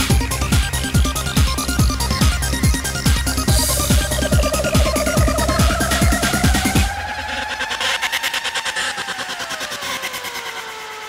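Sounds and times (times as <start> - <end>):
pulsing synthesizer tone gliding down: 3.4 - 11.0.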